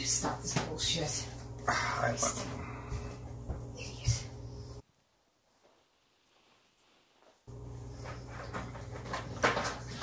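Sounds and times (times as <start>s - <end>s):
steady low hum: 0.0s - 5.0s.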